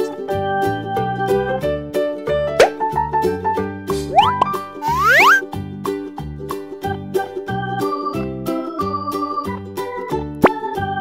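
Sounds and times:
cheerful children's music: 0.0 - 11.0
rising sound effects: 4.1 - 5.4.

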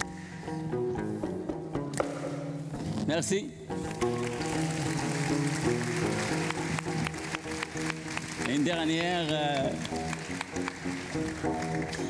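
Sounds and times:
plucked bass lute: 0.0 - 3.2.

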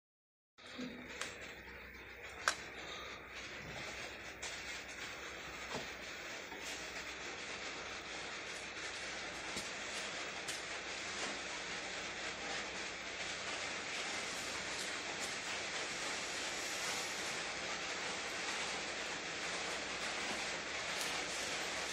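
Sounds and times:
wire straightener machine running: 0.6 - 21.9.

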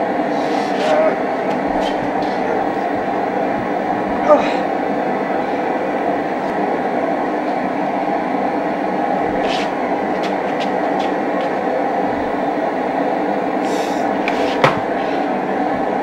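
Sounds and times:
forge roaring: 0.0 - 16.0.

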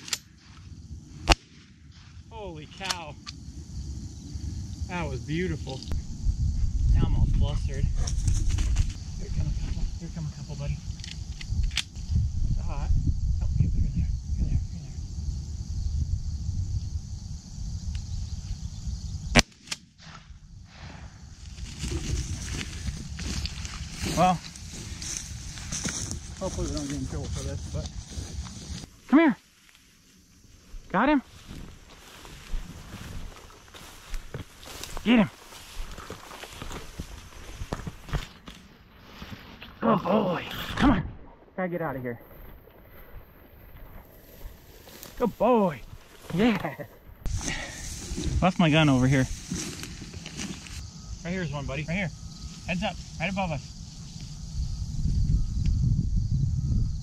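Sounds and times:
wind rumble on microphone: 3.3 - 19.4, 20.3 - 28.9, 30.7 - 38.3, 42.4 - 51.2, 52.0 - 57.0
footsteps through dry grass: 21.4 - 39.7, 42.2 - 46.5, 47.2 - 50.9.

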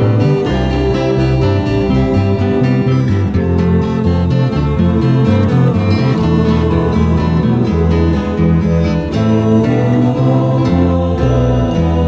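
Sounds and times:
acoustic guitars picking: 0.0 - 12.0
bass line: 0.0 - 12.0.

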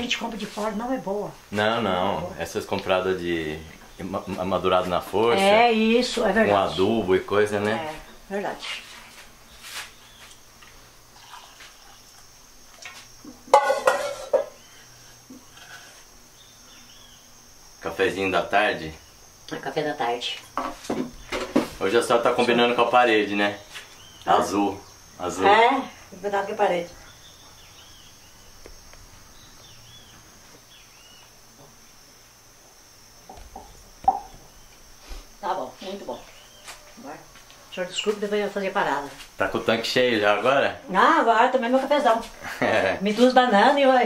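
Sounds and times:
high insect drone: 0.0 - 44.0
bird chirping: 9.5 - 10.4, 16.3 - 17.4, 22.8 - 31.4, 34.1 - 34.8, 35.5 - 38.3
kitchenware clinking: 13.5 - 14.6.

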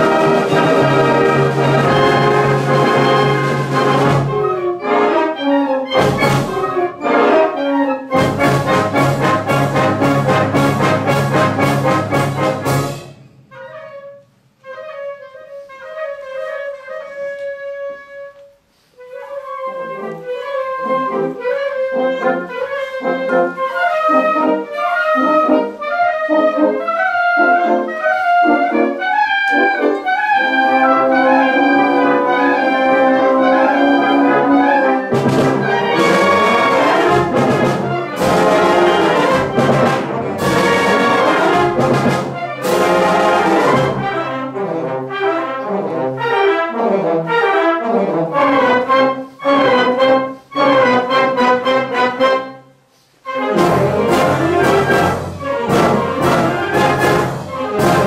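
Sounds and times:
wind band playing: 0.0 - 58.0.

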